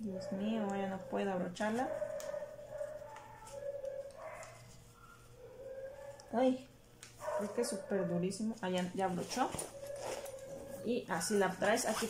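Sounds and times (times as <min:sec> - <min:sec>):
dog whining: 0:01.8 - 0:06.4, 0:09.6 - 0:10.9.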